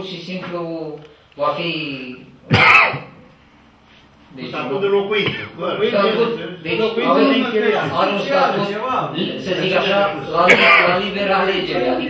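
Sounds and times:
person coughing: 2.5 - 3.2, 10.5 - 11.0.

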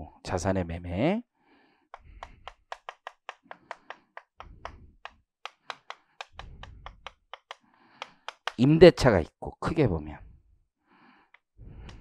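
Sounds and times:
chalk tapping and scraping on blackboard: 1.8 - 8.7.

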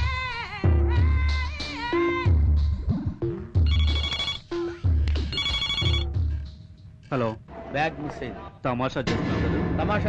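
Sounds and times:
telephone ringing: 3.6 - 6.2.

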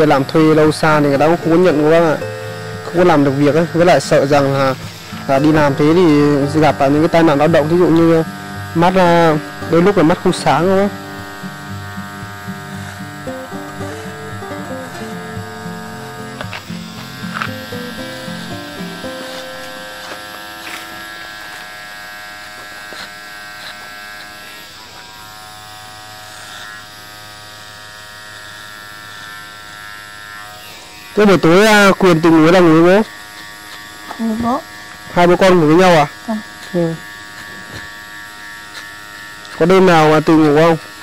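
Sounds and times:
electric hair clippers buzzing: 0.0 - 41.0
background music: 1.3 - 21.1.

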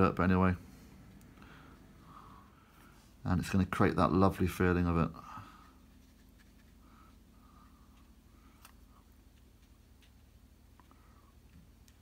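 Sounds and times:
low steady hum: 0.0 - 12.0
brush strokes on wet paper: 5.3 - 11.2.

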